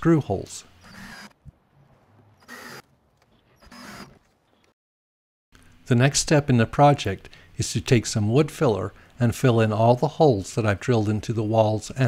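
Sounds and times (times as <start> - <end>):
cordless drill driving screws: 0.8 - 1.4, 2.4 - 2.8, 3.6 - 4.2.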